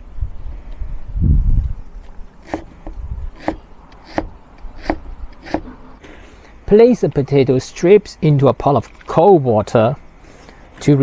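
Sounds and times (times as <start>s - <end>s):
cleaver striking chopping board: 3.4s - 5.7s.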